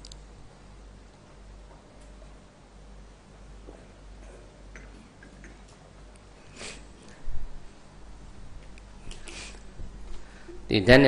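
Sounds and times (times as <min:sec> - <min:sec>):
faint small clicks: 0:00.0 - 0:00.3
low steady hum: 0:00.0 - 0:11.0.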